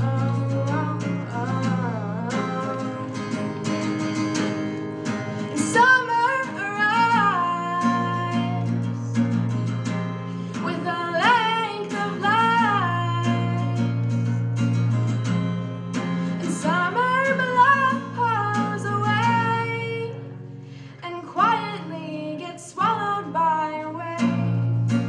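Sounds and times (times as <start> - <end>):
woman singing: 0.0 - 9.6, 10.5 - 14.5, 16.3 - 25.0
strummed acoustic guitar: 0.0 - 25.0.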